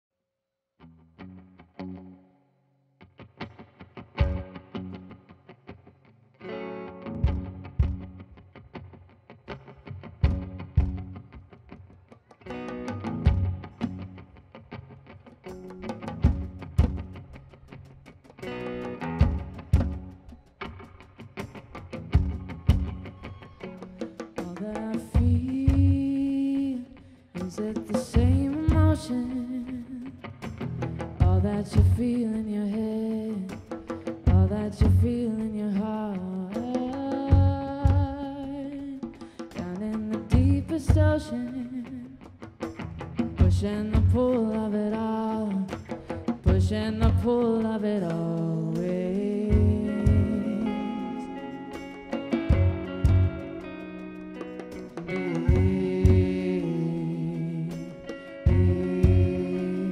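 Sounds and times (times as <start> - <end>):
bass guitar: 0.8 - 2.4, 3.2 - 27.0, 27.8 - 32.5, 33.4 - 35.5, 36.6 - 39.3, 40.1 - 59.9
electric guitar through effects: 0.8 - 59.9
drum kit: 7.2 - 8.2, 10.2 - 11.2, 12.5 - 14.0, 15.5 - 17.5, 18.3 - 26.2, 45.7 - 47.5, 48.7 - 56.6, 57.7 - 59.9.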